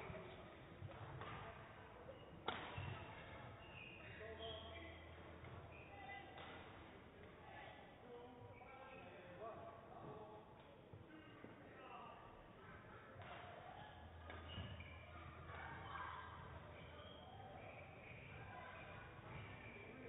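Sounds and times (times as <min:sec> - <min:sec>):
murmur of distant voices: 0:00.0 - 0:20.0.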